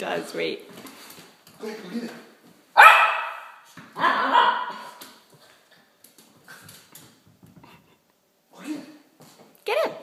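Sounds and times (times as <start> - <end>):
dog barking: 2.8 - 5.0.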